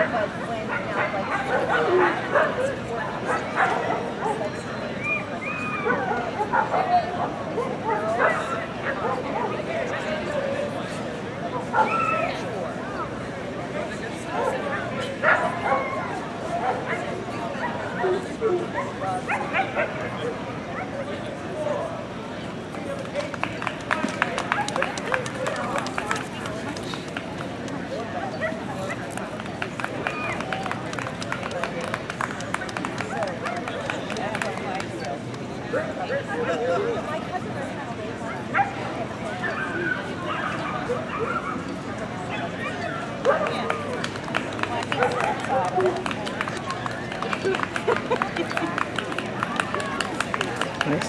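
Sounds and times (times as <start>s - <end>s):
people chattering outdoors: 0.0s - 51.0s
people talking: 0.0s - 51.0s.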